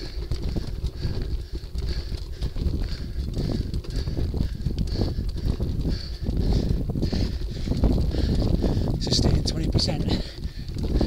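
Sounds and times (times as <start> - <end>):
bicycle rattling on cobbles: 0.0 - 11.0.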